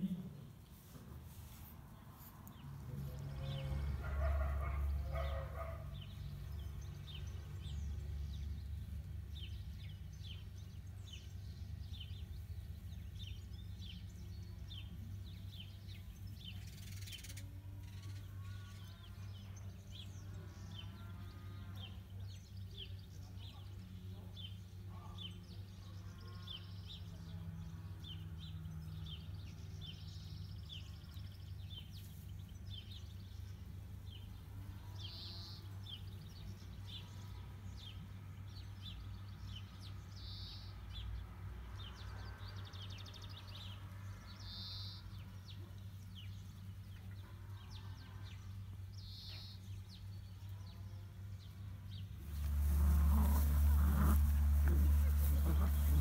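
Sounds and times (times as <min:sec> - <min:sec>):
bird chirping: 0:41.8 - 0:56.0.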